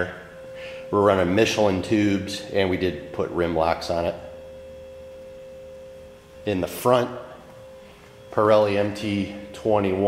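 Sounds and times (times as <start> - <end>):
steady tone: 0.0 - 10.0.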